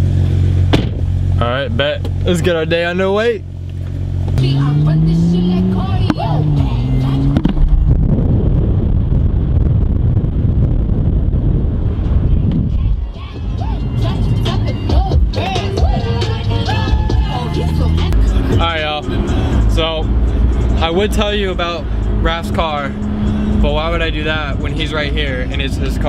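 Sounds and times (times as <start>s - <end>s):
wind and road noise: 0.0s - 26.0s
car engine revving hard: 4.4s - 7.9s, 16.4s - 26.0s.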